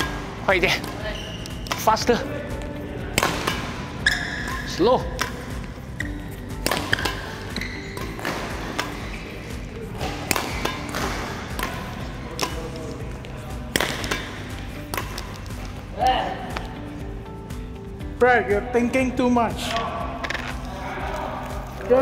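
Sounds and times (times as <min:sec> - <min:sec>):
racket hitting shuttlecocks: 0:00.0 - 0:17.1
background music: 0:00.0 - 0:22.0.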